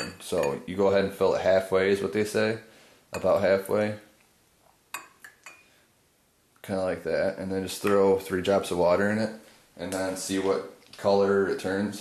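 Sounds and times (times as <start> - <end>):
glass vial clinking against tumbler: 0.0 - 0.7, 3.1 - 3.5, 4.9 - 5.7.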